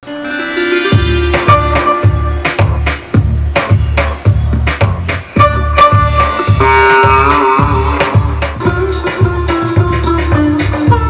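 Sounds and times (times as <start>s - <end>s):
sitar melody: 0.0s - 11.0s
steady drum beat: 0.8s - 11.0s.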